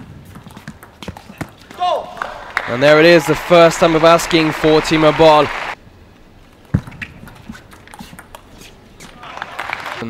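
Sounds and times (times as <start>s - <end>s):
table tennis ball bouncing: 0.2s - 1.6s.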